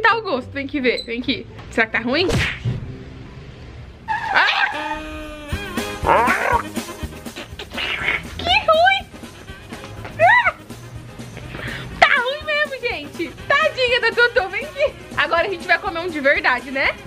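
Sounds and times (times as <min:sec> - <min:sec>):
light background music: 0:00.0 - 0:03.8, 0:05.3 - 0:17.0
woman squealing: 0:04.1 - 0:06.7, 0:10.2 - 0:10.6
woman laughing: 0:10.2 - 0:10.6.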